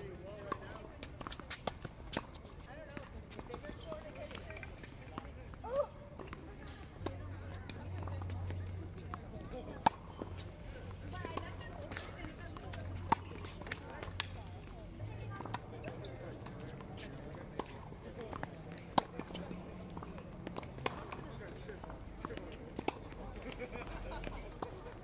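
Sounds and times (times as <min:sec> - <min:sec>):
tennis ball bouncing on hard court: 0:07.0 - 0:10.4, 0:11.0 - 0:14.4, 0:15.2 - 0:21.2
racket striking tennis ball: 0:09.0 - 0:10.1, 0:16.4 - 0:19.4.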